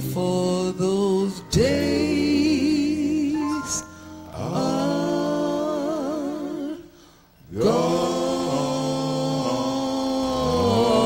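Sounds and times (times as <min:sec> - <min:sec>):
men singing harmony: 0:00.0 - 0:11.0.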